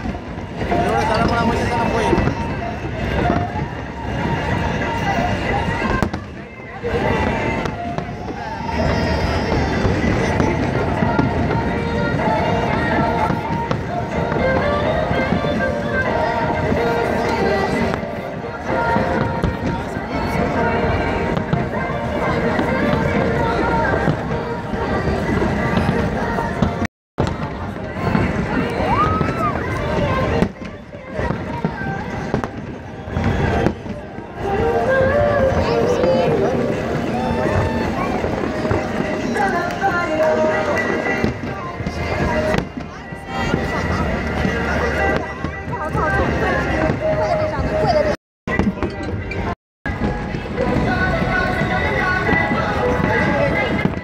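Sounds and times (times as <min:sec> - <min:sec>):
fireworks going off: 0:00.0 - 0:54.0
people's voices: 0:00.0 - 0:54.0.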